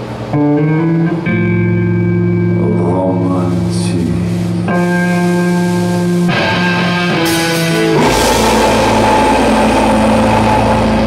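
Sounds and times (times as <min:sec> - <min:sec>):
distorted guitars and bass chords: 0:00.0 - 0:11.0.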